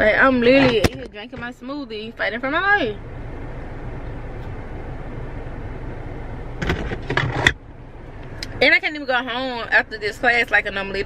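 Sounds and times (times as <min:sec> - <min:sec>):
car engine hum in cabin: 0:00.0 - 0:11.0.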